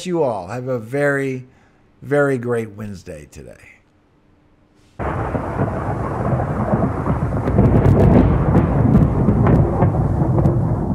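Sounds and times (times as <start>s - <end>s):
low rumble of thunder: 5.0s - 10.9s
rain: 5.0s - 10.9s
sharp crackles of thunder: 5.0s - 10.9s.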